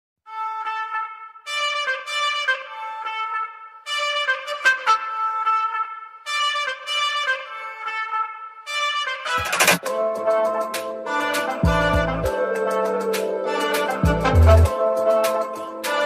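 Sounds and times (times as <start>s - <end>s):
trumpet music: 0.2s - 16.0s.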